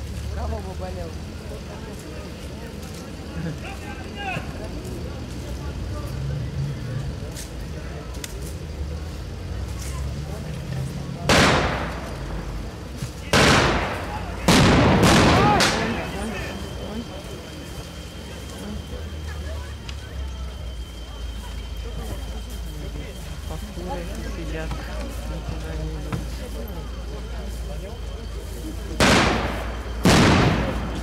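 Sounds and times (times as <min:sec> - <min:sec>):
loud gunfire blasts: 0:11.3 - 0:12.4, 0:13.3 - 0:16.2, 0:29.0 - 0:31.0.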